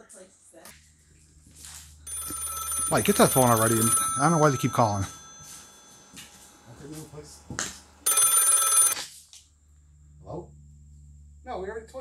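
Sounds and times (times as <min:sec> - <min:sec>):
telephone bell ringing: 0:02.1 - 0:07.0, 0:08.0 - 0:09.0.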